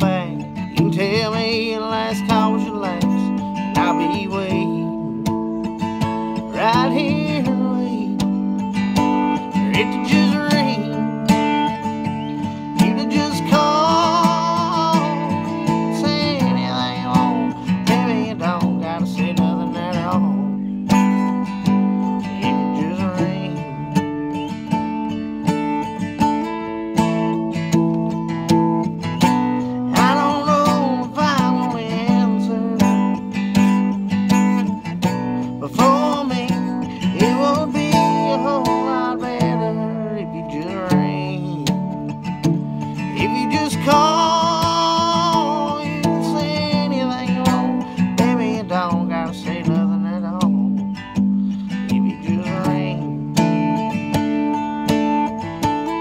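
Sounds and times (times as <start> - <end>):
man singing: 0.0 - 12.0, 12.6 - 24.4, 29.2 - 53.9
acoustic guitar strumming: 0.0 - 56.0.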